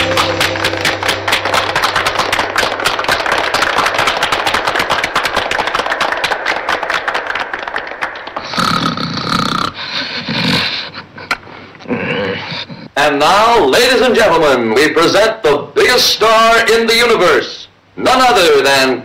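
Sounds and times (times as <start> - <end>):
audience applause: 0.0 - 9.1.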